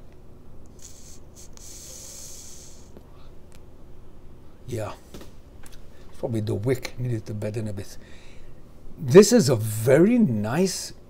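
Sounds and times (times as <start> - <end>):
e-cigarette draw hiss: 0.7 - 3.1
person exhaling vapour: 0.7 - 3.3.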